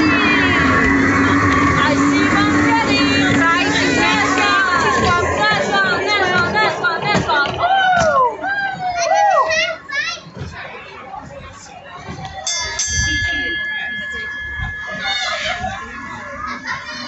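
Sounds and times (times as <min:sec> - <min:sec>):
station bell ringing: 0:00.0 - 0:07.1, 0:12.4 - 0:17.0
children's voices: 0:00.0 - 0:17.0.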